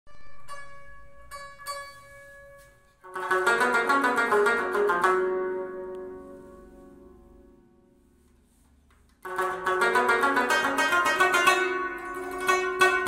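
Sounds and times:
plucked lute notes: 0:00.1 - 0:08.1, 0:09.2 - 0:13.0.

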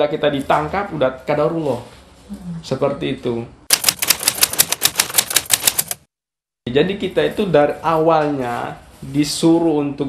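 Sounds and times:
typewriter key clicks: 0:03.7 - 0:06.0.

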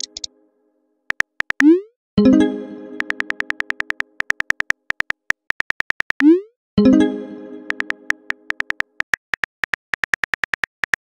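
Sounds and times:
keyboard key clicks: 0:03.0 - 0:06.2, 0:07.7 - 0:11.0.

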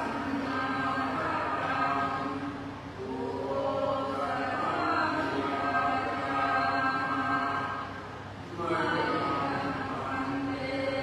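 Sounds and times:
group chanting: 0:00.0 - 0:07.9, 0:08.5 - 0:11.0.

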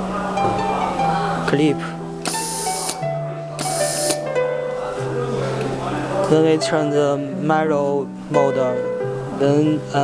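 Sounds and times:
plucked-string background music: 0:00.0 - 0:10.0
compressed air hissing: 0:02.2 - 0:03.0, 0:03.6 - 0:04.2.

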